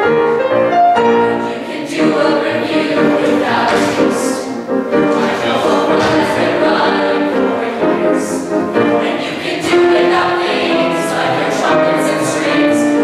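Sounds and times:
choir singing: 0.0s - 13.0s
grand piano accompaniment: 0.0s - 13.0s.

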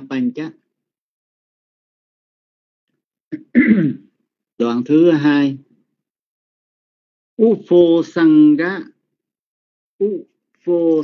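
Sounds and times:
person coughing: 3.3s - 4.1s.

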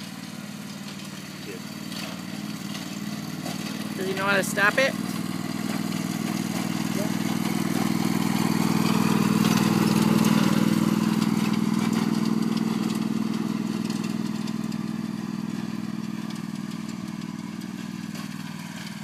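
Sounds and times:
riding lawn mower engine: 0.0s - 19.0s.

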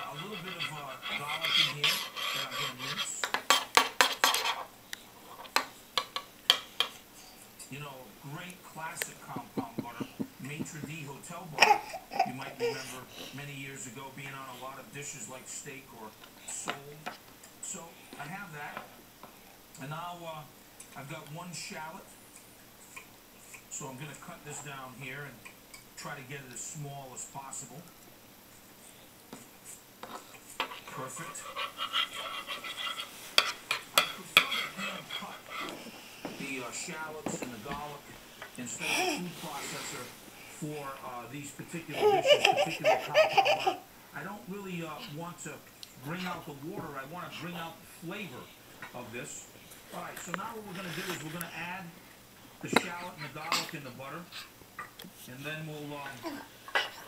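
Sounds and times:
spoon scraping a plastic cup: 0.0s - 4.7s, 30.1s - 35.8s.

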